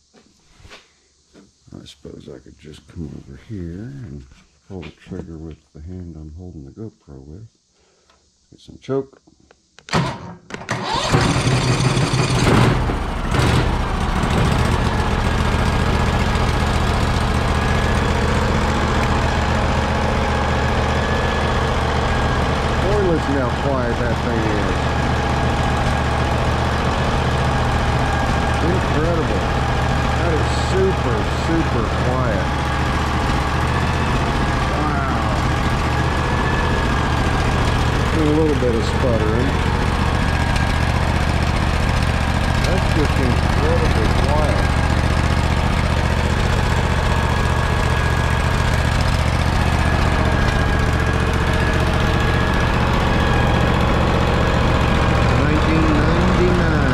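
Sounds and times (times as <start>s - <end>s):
electric starter cranking: 9.8s - 56.9s
engine running through muffler: 10.7s - 56.9s.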